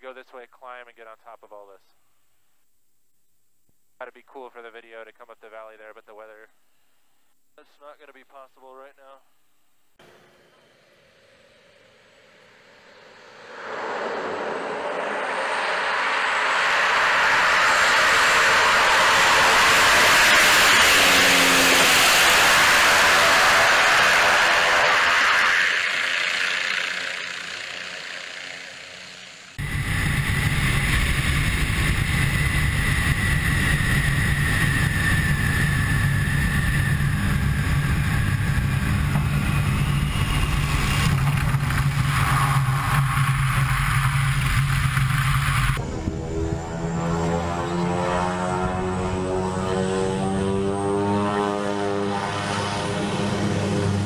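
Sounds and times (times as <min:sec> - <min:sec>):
high whine: 0:10.0 - 0:54.0
propeller plane engine: 0:10.0 - 0:54.0.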